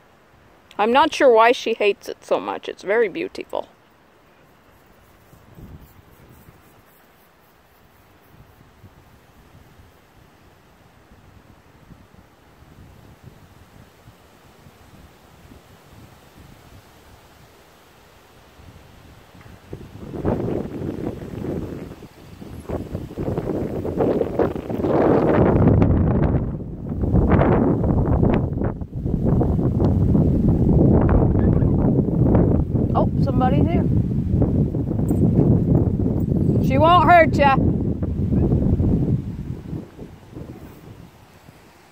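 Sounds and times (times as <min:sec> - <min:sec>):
wind buffeting microphone: 0:05.2 - 0:06.8, 0:18.6 - 0:41.9.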